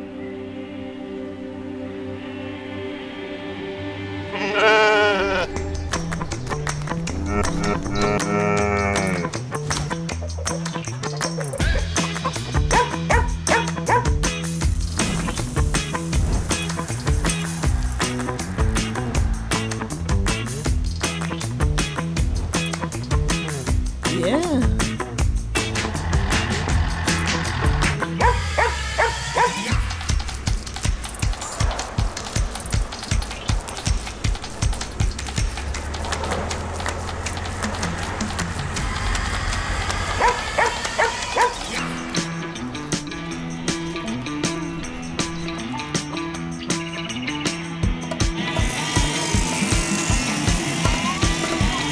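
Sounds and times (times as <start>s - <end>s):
sheep bleating: 4.3s - 5.6s, 7.2s - 9.4s
background music with percussion: 5.4s - 51.9s
dog barking: 12.7s - 14.2s, 28.2s - 29.7s, 40.2s - 41.7s.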